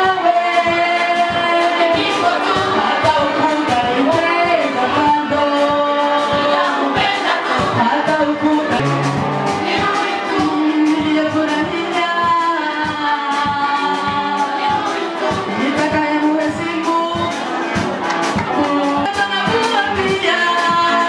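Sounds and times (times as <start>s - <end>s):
person singing into microphone: 0.0s - 17.5s, 18.4s - 21.0s
amplified music with steady beat: 8.7s - 10.0s.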